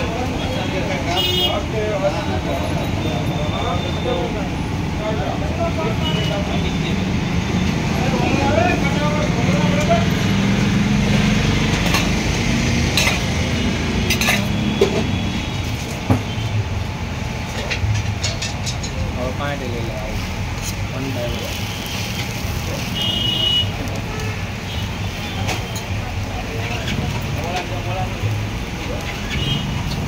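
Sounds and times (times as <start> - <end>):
traffic hum: 0.0 - 30.0
metal utensils clinking on griddle: 11.8 - 12.3, 12.9 - 13.4, 14.0 - 15.0, 17.5 - 19.2.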